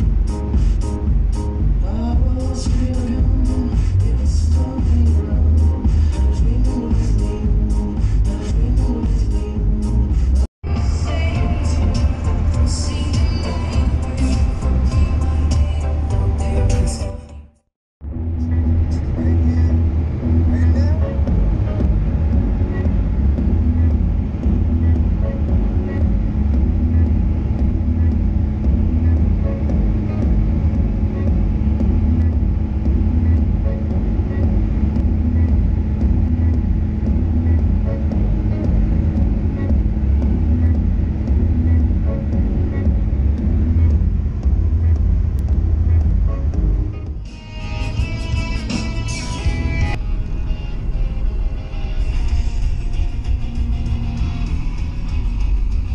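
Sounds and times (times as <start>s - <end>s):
car engine and tyre drone: 0.0s - 17.2s, 18.0s - 55.9s.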